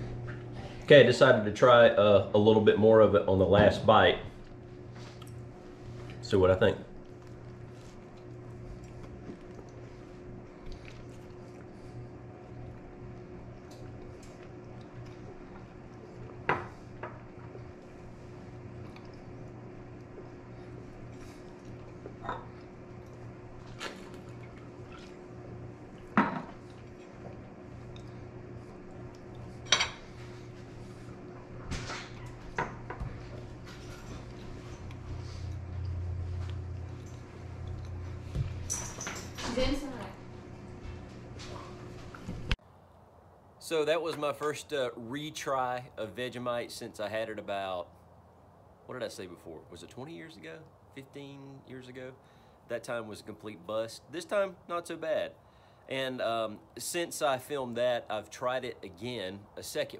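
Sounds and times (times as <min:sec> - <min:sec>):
steady low hum: 0:00.0 - 0:59.9.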